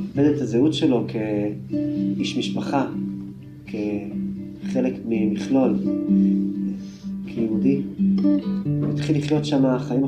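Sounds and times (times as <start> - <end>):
acoustic guitar music: 0.0 - 10.0
person's voice: 8.9 - 10.0.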